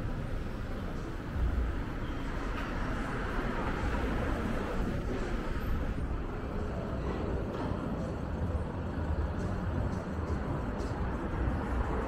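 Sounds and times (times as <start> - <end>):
low rumble of traffic: 0.0 - 12.0.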